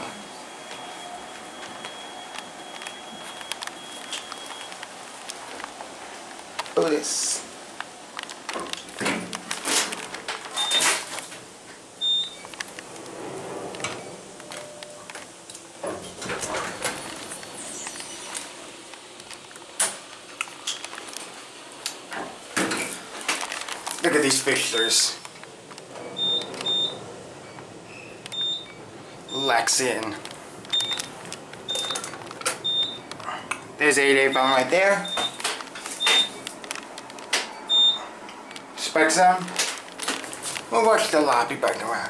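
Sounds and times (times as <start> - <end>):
elevator running hum: 0.0 - 6.6, 10.0 - 38.8
elevator doors sliding shut: 12.0 - 18.6, 24.8 - 36.4
elevator door clack: 25.8 - 29.5.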